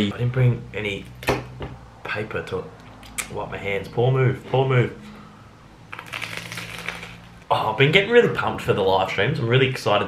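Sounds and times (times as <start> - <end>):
crunching bite into toast: 5.9 - 7.3.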